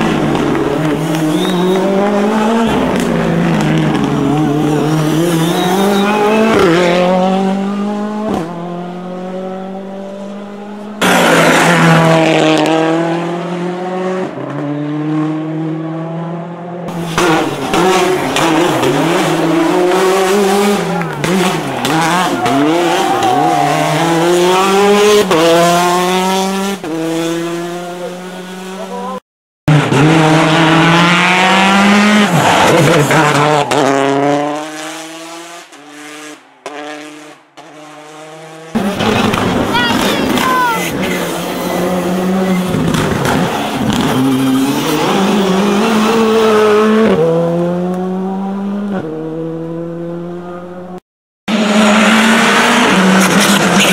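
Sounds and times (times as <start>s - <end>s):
rally car engines revving: 0.0s - 53.9s
tyre squeal: 1.2s - 2.0s, 5.0s - 6.7s.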